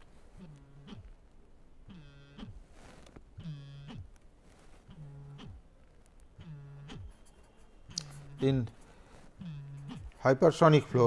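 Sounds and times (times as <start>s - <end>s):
man making hesitation sounds: 7.9s - 8.8s.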